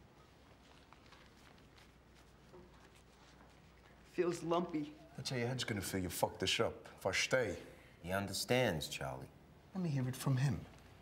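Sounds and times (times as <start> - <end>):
clothing rustling: 0.0 - 5.2.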